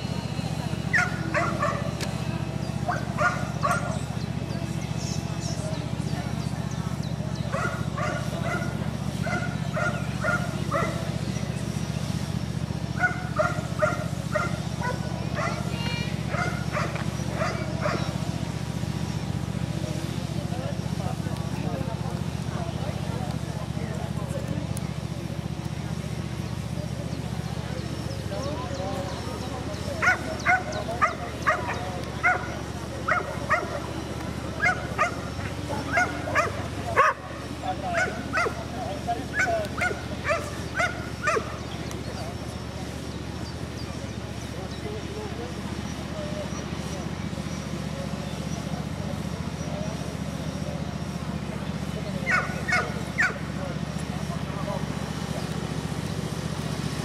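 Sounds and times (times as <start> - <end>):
dog barking: 0.9 - 1.9, 2.9 - 4.0, 7.5 - 11.1, 13.0 - 15.7, 16.3 - 18.1, 30.0 - 32.5, 33.1 - 33.8, 34.6 - 35.3, 35.9 - 37.3, 37.9 - 38.6, 39.3 - 41.6, 52.3 - 53.4.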